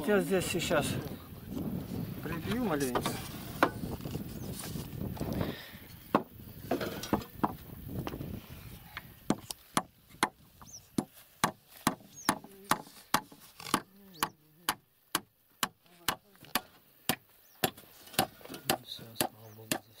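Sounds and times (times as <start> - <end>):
hatchet chopping into ground: 11.0 - 19.9.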